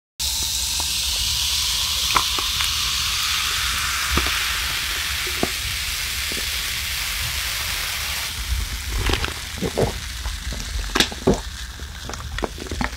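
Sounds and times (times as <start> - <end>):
fizzing hiss: 0.2 - 12.3
soda pouring into a glass: 0.2 - 12.9
ice popping and cracking: 8.4 - 12.9.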